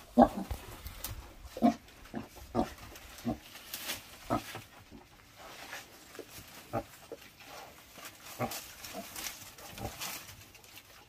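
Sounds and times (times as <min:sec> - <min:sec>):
piglets grunting and squealing: 0:00.0 - 0:00.6
dry leaves rustling: 0:00.0 - 0:11.0.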